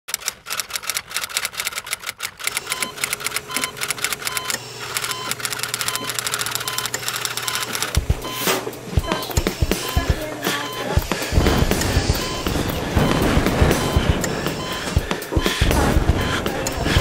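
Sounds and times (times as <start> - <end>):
rapid typing clicks: 0.1 - 8.4, 11.0 - 17.0
short beeps: 2.6 - 17.0
low hum: 10.9 - 17.0.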